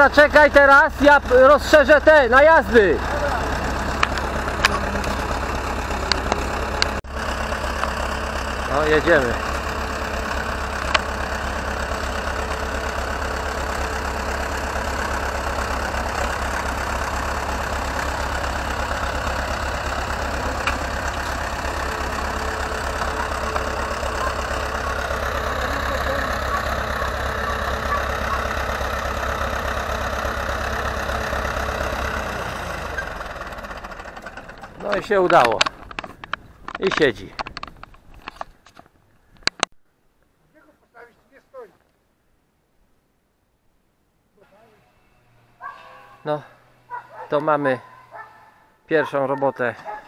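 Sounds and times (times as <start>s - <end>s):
tractor diesel engine rumbling: 0.0s - 39.7s, 44.4s - 50.0s.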